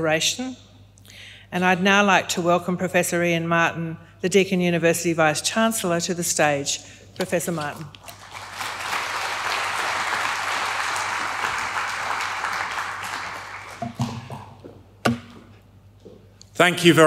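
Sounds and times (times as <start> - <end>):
audience applauding: 8.0 - 14.3.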